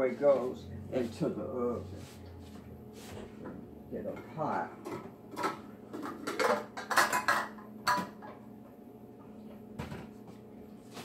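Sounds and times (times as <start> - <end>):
metal pots and pans clanking: 4.2 - 8.3.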